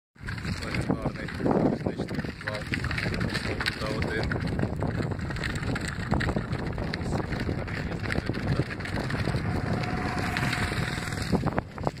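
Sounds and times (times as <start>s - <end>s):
plastic wheels rattling over gravel: 0.2s - 12.0s
wind buffeting microphone: 0.2s - 12.0s.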